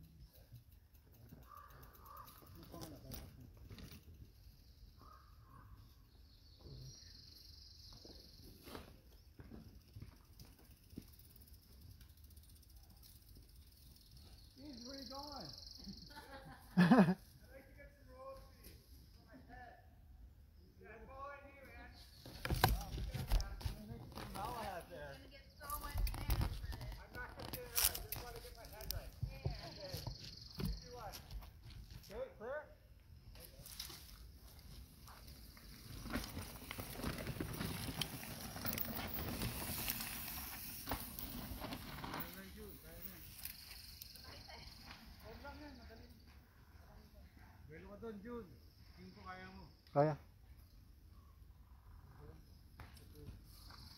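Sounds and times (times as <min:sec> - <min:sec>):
voices talking: 0:01.3 - 0:04.0, 0:14.2 - 0:50.4.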